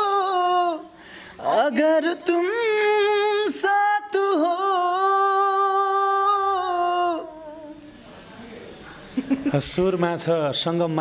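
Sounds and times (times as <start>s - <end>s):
woman singing unaccompanied: 0.0s - 8.0s.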